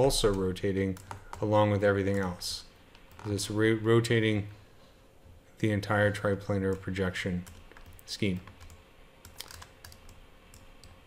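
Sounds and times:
faint low hum: 0.0 - 11.0
keyboard and mouse clicks: 0.2 - 1.5, 6.7 - 11.0.

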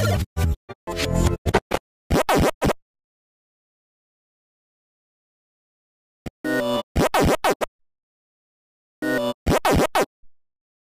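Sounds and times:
distorted sped-up scratchy audio: 0.0 - 2.8, 6.6 - 7.7, 9.0 - 10.1.

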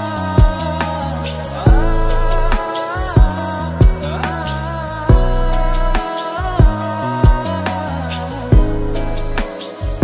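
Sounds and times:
romantic music with slow beat: 0.0 - 10.0.

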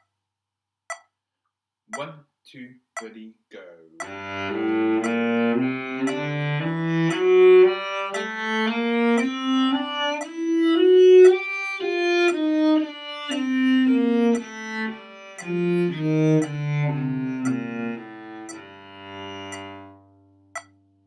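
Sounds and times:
cello playing a scale: 4.0 - 20.7.

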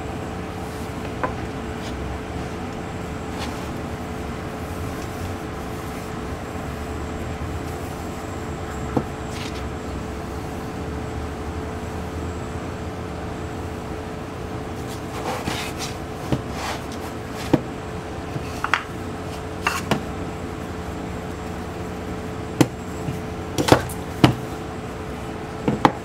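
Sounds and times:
low background hum: 0.0 - 26.0.

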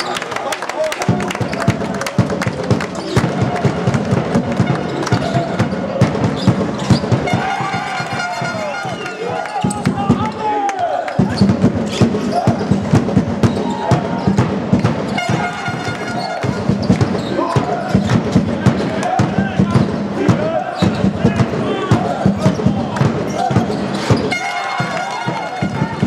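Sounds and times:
voices in hall: 0.0 - 26.0
basketball bouncing on wooden court: 1.5 - 8.0, 11.2 - 26.0
sneaker squeaks: 4.6 - 10.4, 13.4 - 18.4, 20.6 - 21.2, 22.4 - 26.0.

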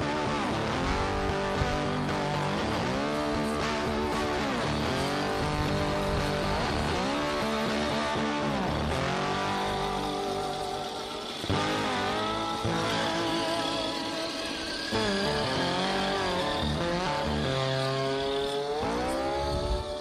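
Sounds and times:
electric motor whining: 0.0 - 20.0.

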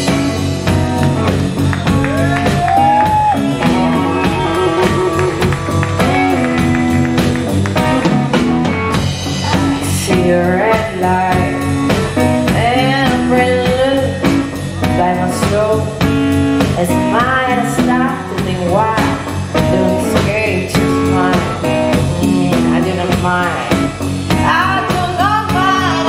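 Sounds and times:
bass guitar: 0.0 - 26.0
drum kit: 0.0 - 26.0
electric guitar lead: 0.0 - 26.0.

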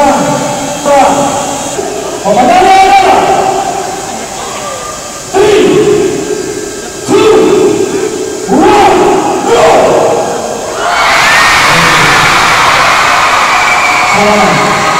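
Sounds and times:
crowd cheering and screaming: 10.7 - 14.9.

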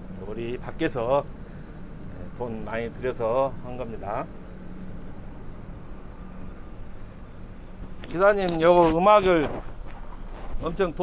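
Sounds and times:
bus engine idling hum: 0.0 - 11.0.

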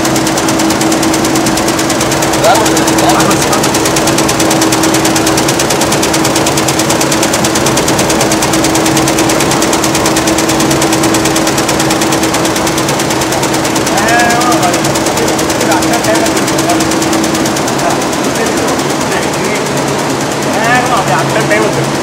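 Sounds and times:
embroidery machine needle stitching: 0.0 - 22.0
motor hum: 0.0 - 22.0.

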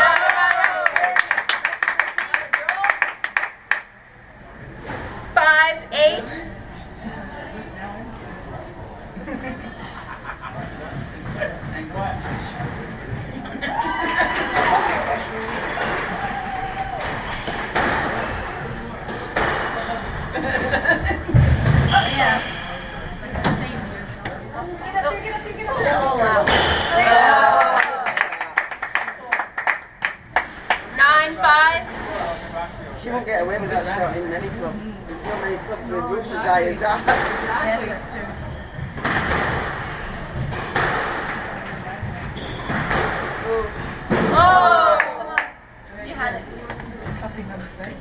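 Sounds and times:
ball hitting court walls: 19.0 - 19.8, 39.0 - 41.5, 42.3 - 44.5
squash racquet strikes: 19.1 - 19.8, 37.0 - 37.6, 39.0 - 41.5, 42.6 - 44.4.

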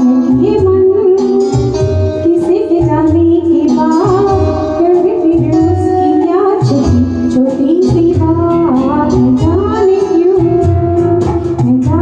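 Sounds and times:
electronic keyboard with bass line: 0.0 - 12.0
woman singing into microphone: 0.0 - 12.0.

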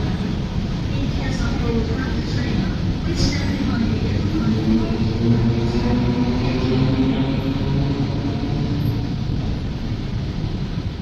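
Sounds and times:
traffic jam rumble: 0.0 - 11.0.

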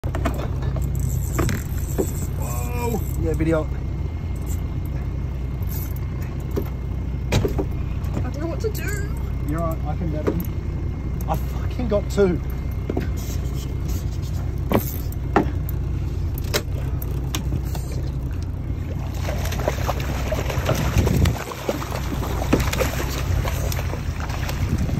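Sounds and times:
boat motor rumbling: 0.0 - 24.9.

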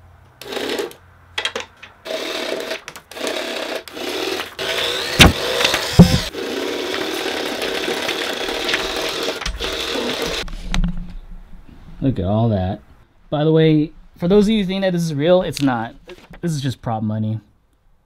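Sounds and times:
money gun motor whirring: 2.1 - 10.4
sharp knocks: 5.0 - 6.3.

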